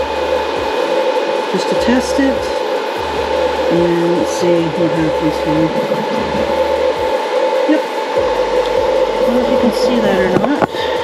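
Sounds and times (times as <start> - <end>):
cooling fan whirring and humming: 0.0 - 11.0.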